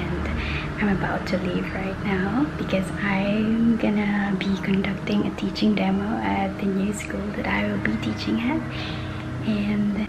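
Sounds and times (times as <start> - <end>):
woman speaking: 0.0 - 10.0.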